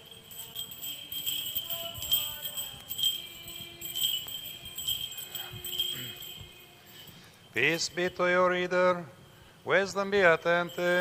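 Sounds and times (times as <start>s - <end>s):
censer bells jingling: 0.0s - 11.0s.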